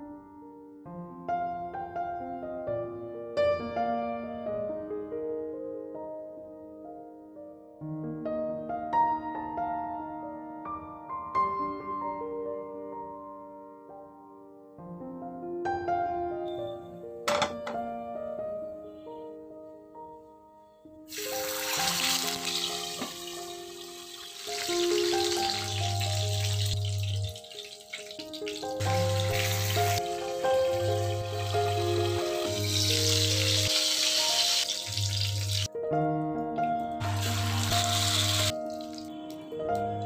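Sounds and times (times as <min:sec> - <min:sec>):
soft instrumental music: 0:00.0 - 0:40.0
fish sizzling in hot oil: 0:21.1 - 0:35.7, 0:37.0 - 0:39.1.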